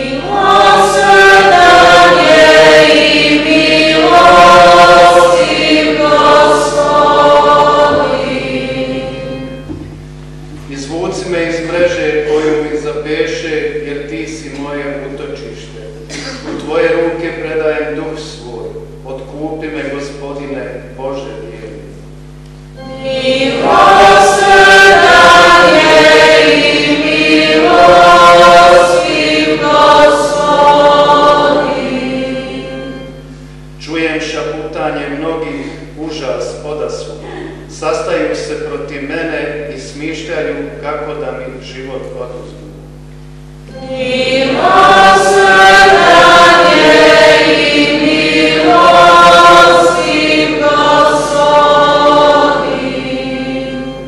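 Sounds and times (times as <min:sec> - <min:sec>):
group of voices singing: 0:00.0 - 0:09.7, 0:22.8 - 0:33.3, 0:43.7 - 0:54.0.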